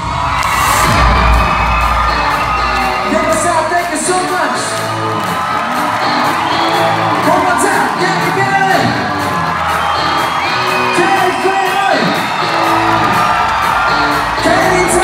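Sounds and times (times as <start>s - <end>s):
crowd whooping and cheering: 0.0s - 15.0s
pop-rock band playing: 0.2s - 15.0s.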